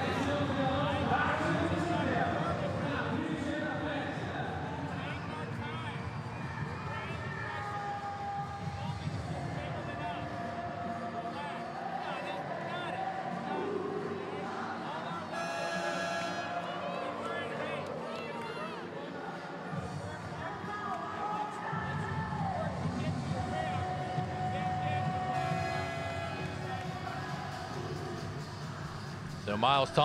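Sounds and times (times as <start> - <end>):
background music: 0.0 - 30.0
crowd chatter: 0.0 - 30.0
short buzzer tone: 15.4 - 16.6.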